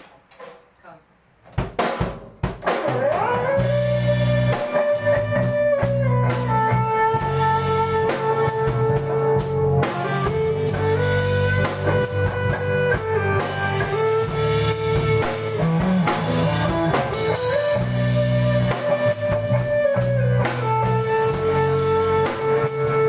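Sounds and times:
drum hits: 0.0 - 0.8, 1.4 - 23.0
rock band playing: 1.6 - 23.0.

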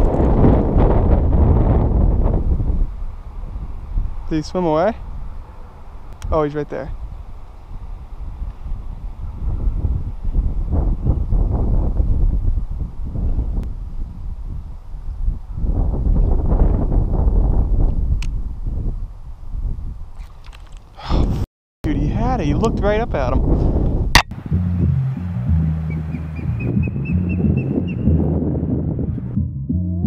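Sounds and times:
wind buffeting microphone: 0.0 - 29.4.

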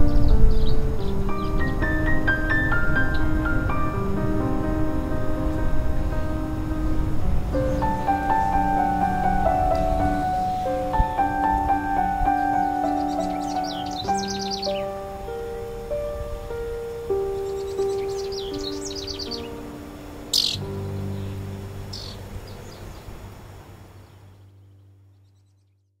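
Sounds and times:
birds chirping: 0.0 - 26.0
slow gentle piano music: 0.0 - 26.0.

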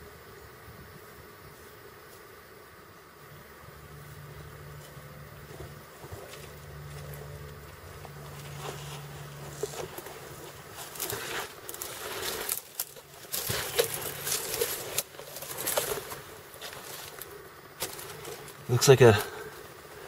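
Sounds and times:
faint insect buzz: 0.0 - 20.0
rustling and scraping of dry brush: 3.8 - 20.0
twigs snapping: 9.6 - 19.6.

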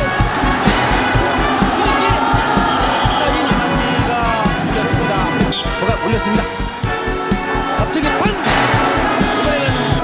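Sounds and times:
arena crowd cheering and shouting: 0.0 - 10.0
background music with steady beat: 0.0 - 10.0.

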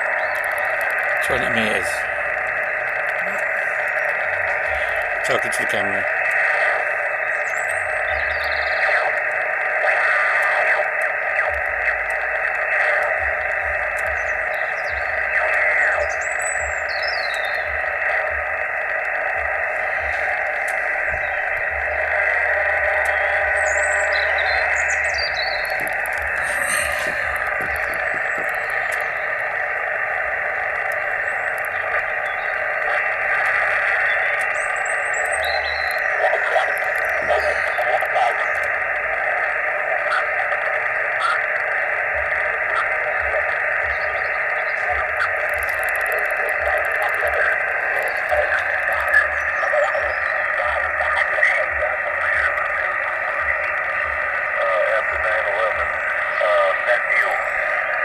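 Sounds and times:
radio static hiss: 0.0 - 58.0.

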